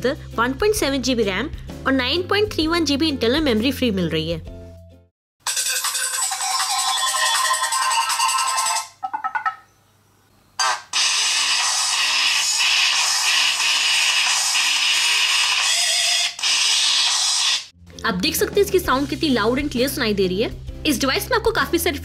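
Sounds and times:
smartphone ringtone tunes: 5.5s - 9.6s.

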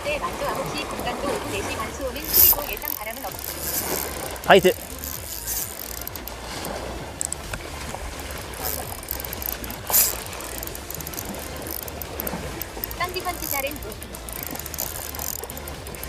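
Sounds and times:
sea wash: 0.0s - 16.0s
fishing reel being wound: 1.5s - 16.0s
fishing rod handling: 1.6s - 16.0s.

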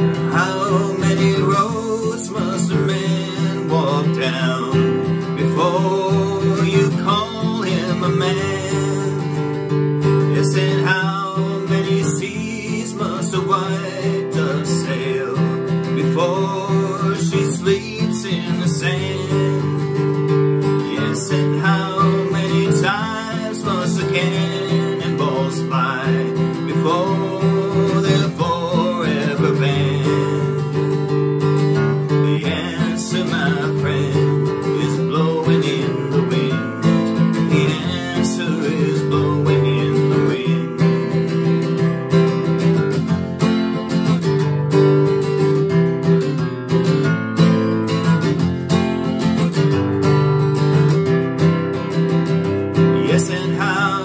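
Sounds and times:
man singing: 0.0s - 42.8s, 52.7s - 54.0s
acoustic guitar strumming: 0.0s - 54.0s.

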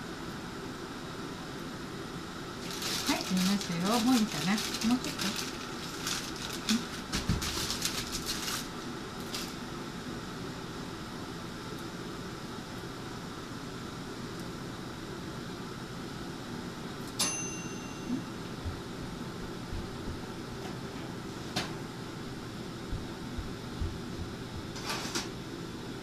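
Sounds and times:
plastic wrapping crinkling: 2.6s - 9.6s.

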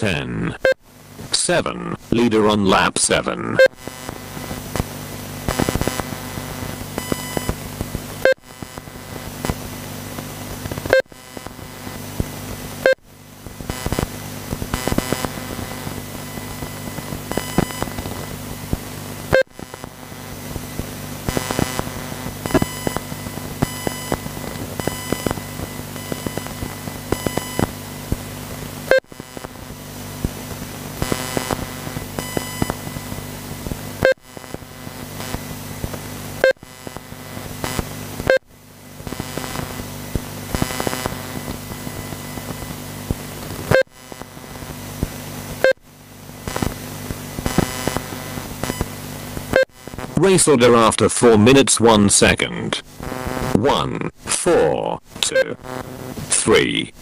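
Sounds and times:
low electrical hum: 0.0s - 57.0s
short beeps and clicks: 55.2s - 55.7s.

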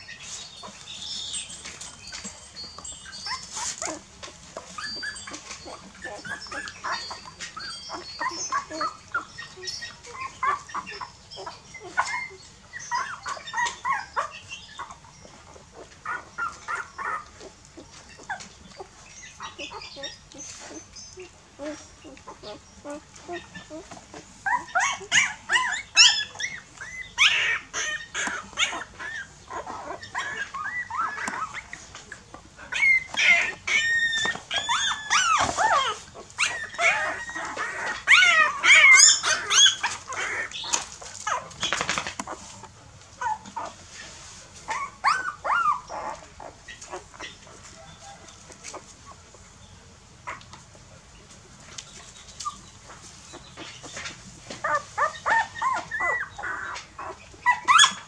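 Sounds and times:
puppies squeaking and whimpering: 0.0s - 50.5s, 51.7s - 58.0s.

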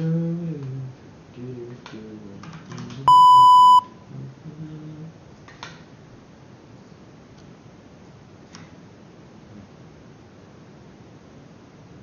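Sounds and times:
electronic beep: 3.1s - 3.9s.

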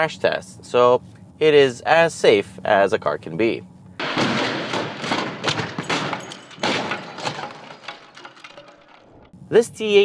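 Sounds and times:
car crashing and scraping: 4.0s - 9.4s.

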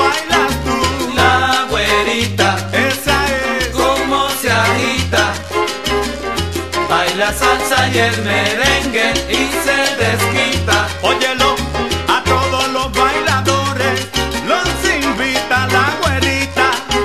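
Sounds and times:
bass line: 0.0s - 17.0s
salsa orchestra instrumental: 0.0s - 17.0s.

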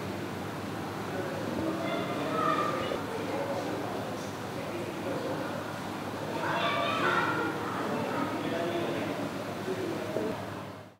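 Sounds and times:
indistinct talking: 1.1s - 3.4s.

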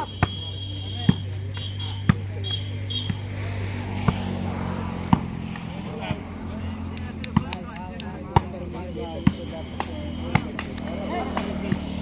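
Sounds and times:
voices chattering: 0.0s - 12.0s
hands slapping volleyball: 4.0s - 4.4s, 5.0s - 12.0s.

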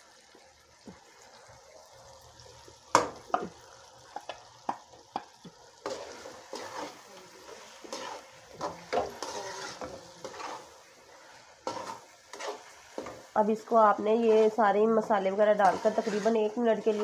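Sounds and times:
oil sizzling: 0.0s - 17.0s
spoon scraping metal pan: 5.8s - 13.3s, 15.4s - 17.0s.

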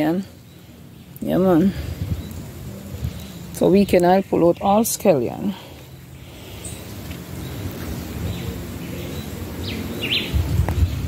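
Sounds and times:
wind rumbling on microphone: 1.2s - 5.4s, 6.3s - 11.0s.

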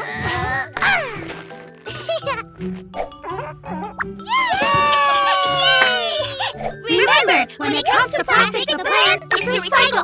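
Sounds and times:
light cartoon music: 0.0s - 10.0s.

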